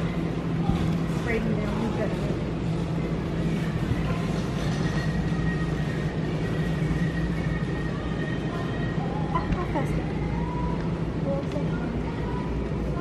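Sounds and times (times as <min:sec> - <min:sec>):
store interior hum and rumble: 0:00.0 - 0:13.0.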